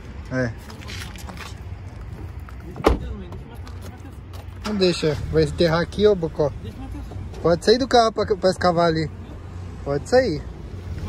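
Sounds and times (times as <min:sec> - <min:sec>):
car door slamming: 0:02.8 - 0:03.2.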